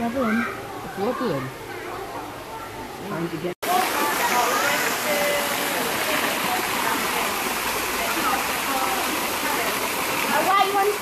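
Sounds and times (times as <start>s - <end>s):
running water rushing: 0.0s - 11.0s.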